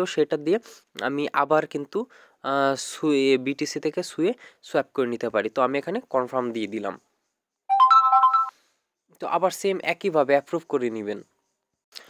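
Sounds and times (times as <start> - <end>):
smartphone notification chime: 7.7 - 8.5.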